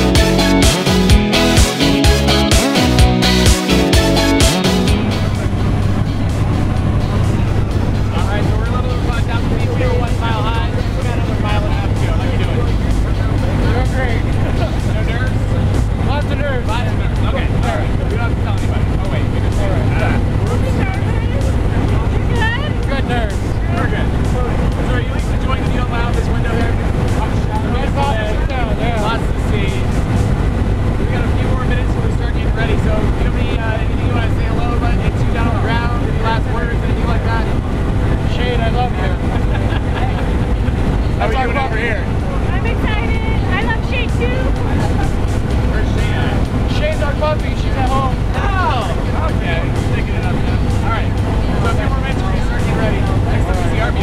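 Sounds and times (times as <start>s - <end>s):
airplane engine drone: 0.0s - 54.0s
people talking and laughing: 0.0s - 54.0s.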